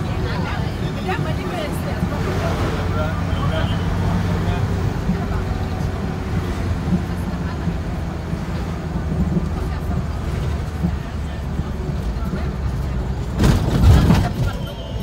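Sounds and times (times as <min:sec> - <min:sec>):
indistinct voices: 0:00.0 - 0:15.0
vehicle engine and road noise: 0:00.0 - 0:15.0.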